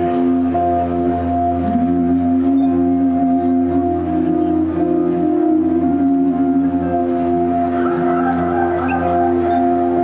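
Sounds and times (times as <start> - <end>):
live band sustained chords: 0.0 - 10.0
wavering high melody: 0.0 - 10.0.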